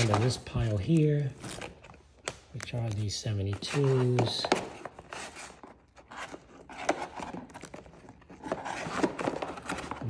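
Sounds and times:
plastic-sleeved cards rustling: 0.0s - 10.0s.

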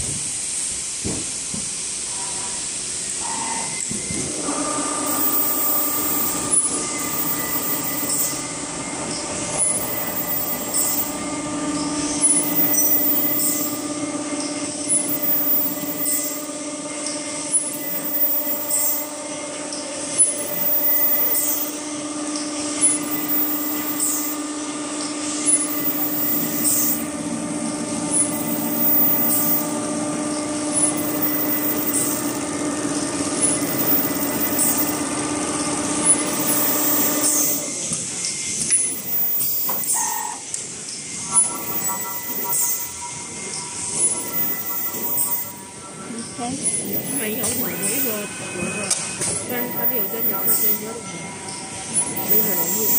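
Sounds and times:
sewing machine whine: 3.2s - 52.9s.

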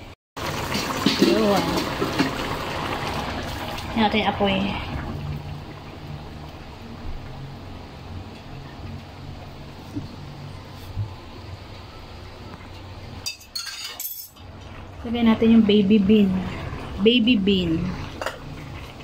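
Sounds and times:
sauce simmering and bubbling: 0.4s - 10.7s, 14.4s - 19.0s.

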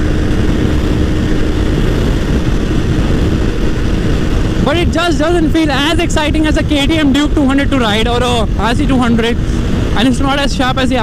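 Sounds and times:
motorcycle engine running: 0.0s - 11.0s
wind noise on microphone: 0.0s - 11.0s.

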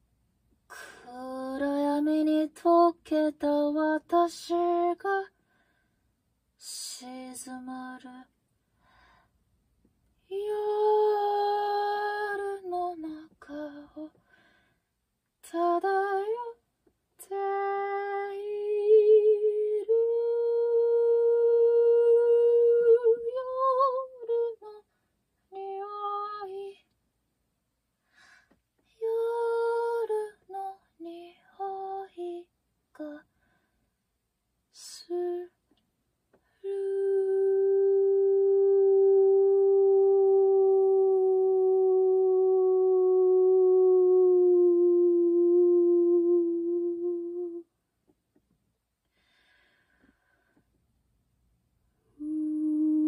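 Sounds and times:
person humming: 36.6s - 47.7s, 52.1s - 53.0s.

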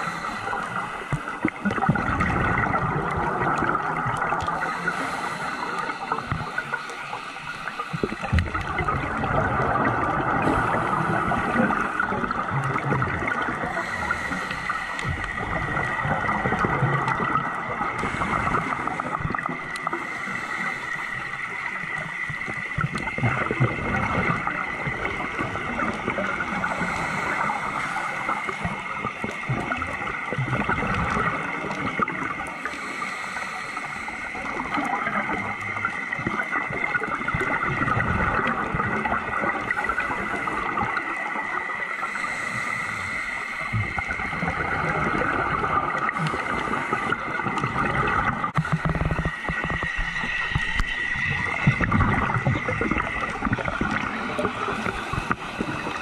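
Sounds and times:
muffled underwater wash: 0.0s - 56.0s.

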